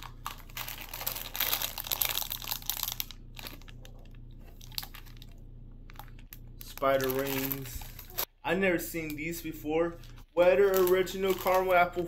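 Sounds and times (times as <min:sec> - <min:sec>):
plastic bags crinkling: 0:00.0 - 0:08.3, 0:10.0 - 0:12.0.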